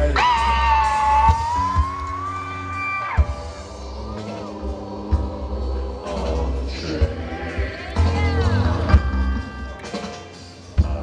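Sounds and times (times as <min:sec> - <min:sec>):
rock band slow ambient jam: 0:00.0 - 0:11.0.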